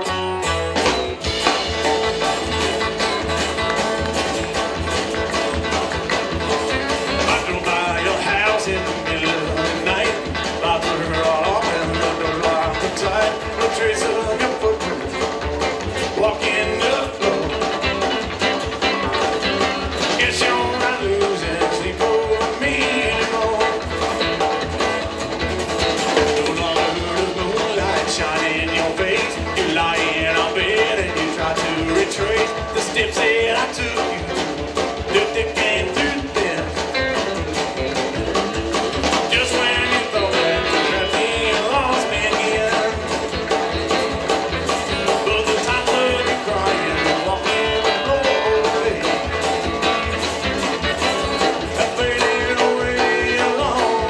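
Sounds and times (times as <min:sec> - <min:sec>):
drums: 0:00.0 - 0:54.0
plucked upright bass: 0:00.0 - 0:54.0
strummed acoustic guitar: 0:00.0 - 0:54.0
man singing: 0:07.1 - 0:18.1, 0:20.0 - 0:24.3, 0:26.1 - 0:37.2, 0:39.1 - 0:43.9, 0:44.9 - 0:50.3, 0:51.0 - 0:54.0.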